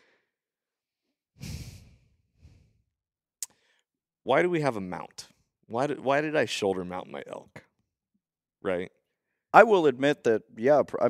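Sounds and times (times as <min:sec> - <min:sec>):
man exhaling heavily: 0:01.4 - 0:02.8.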